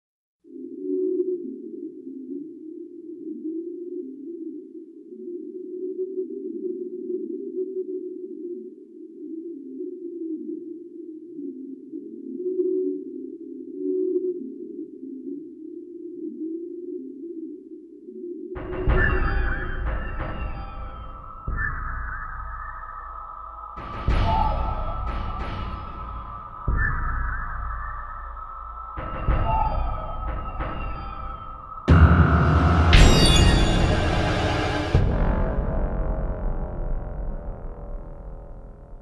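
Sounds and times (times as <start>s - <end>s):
electronic synthesizer drone music: 18.6s - 39.0s.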